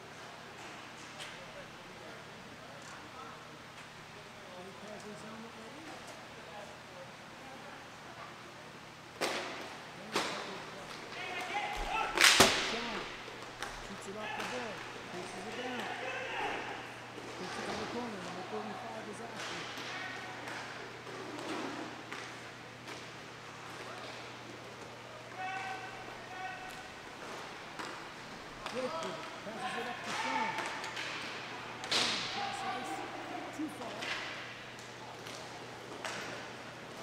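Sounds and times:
steady hum: 1.3 - 37.0
hockey sticks cracking: 10.2 - 16.0, 26.7 - 32.6
players shouting: 14.0 - 18.6, 25.2 - 27.0, 28.6 - 33.7.

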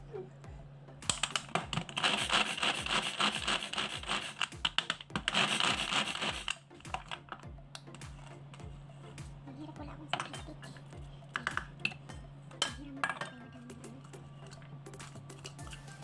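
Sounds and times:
coconut grated on metal grater: 1.1 - 7.4.

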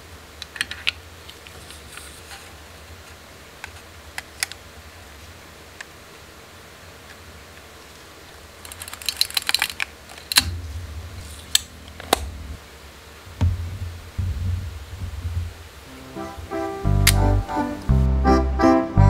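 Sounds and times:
music: 15.9 - 19.0.

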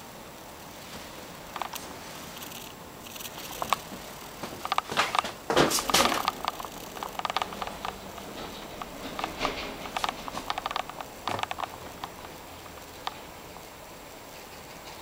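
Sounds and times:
faint room hiss: 0.0 - 15.0
clicks and knocks of handling: 1.5 - 13.4.

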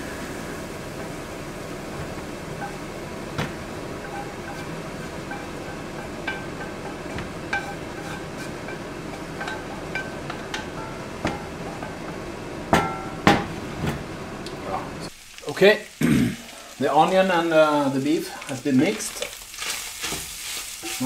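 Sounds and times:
steady hiss: 0.0 - 6.4, 14.4 - 21.0
pan knocking on hob: 3.4 - 7.8, 8.7 - 13.6
wooden spatula scraping pan: 3.9 - 10.1, 18.9 - 21.0.

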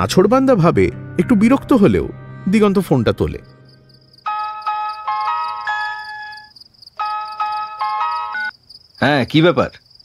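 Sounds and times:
cricket chirring: 2.5 - 10.0
phone ringtone chiming melody: 4.3 - 8.5.

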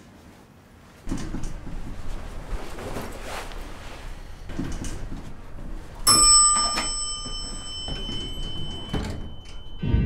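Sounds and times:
bell-like chime: 6.1 - 9.9.

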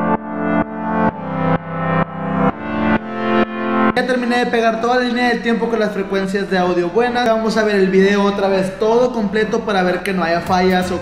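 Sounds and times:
pulsing distorted chord: 0.0 - 6.0.

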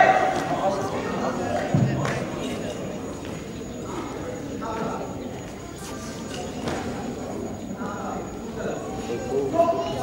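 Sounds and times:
crowd voices in sports hall: 0.0 - 10.0.

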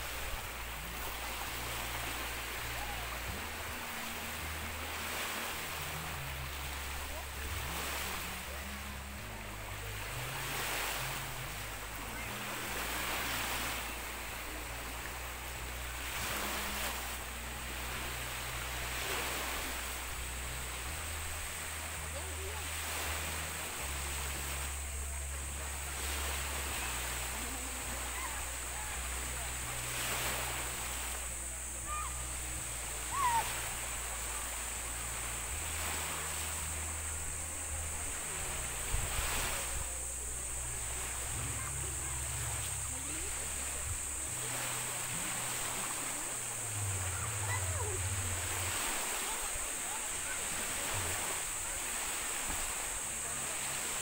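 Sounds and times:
small waves washing ashore: 0.0 - 54.0.

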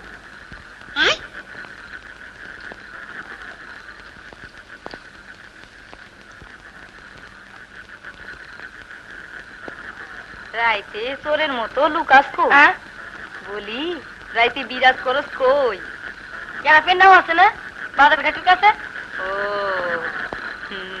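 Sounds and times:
frogs trilling chorus: 0.0 - 21.0
person calling: 1.0 - 1.3.

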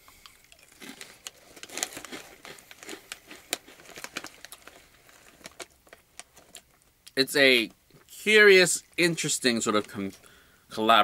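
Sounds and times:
crackers being chewed: 0.1 - 7.2.

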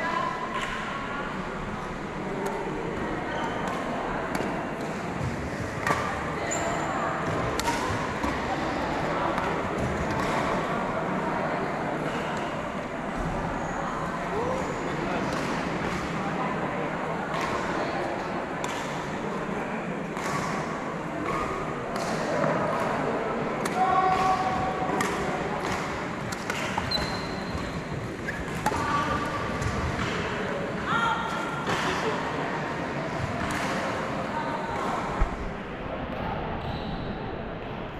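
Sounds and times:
murmur of voices: 0.0 - 37.9
racket striking shuttlecock: 23.6 - 30.3
squeaks on wooden floor: 26.8 - 28.5.

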